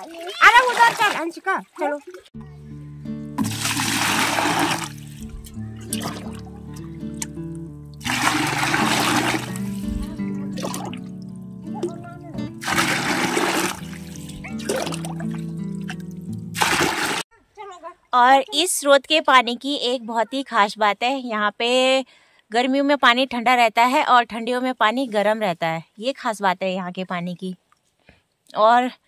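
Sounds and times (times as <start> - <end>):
water splashing into bucket: 0.0 - 2.3, 3.4 - 17.2.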